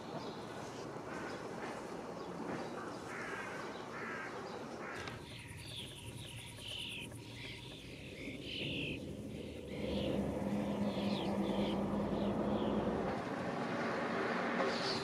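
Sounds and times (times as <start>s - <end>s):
outdoor background noise: 0.0s - 15.0s
sparrows chirping: 0.2s - 13.2s.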